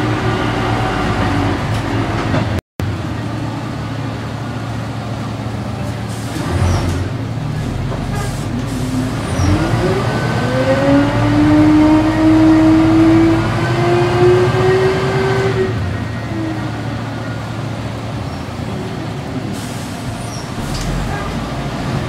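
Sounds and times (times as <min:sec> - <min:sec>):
bus engine pulling away: 0:00.0 - 0:22.0.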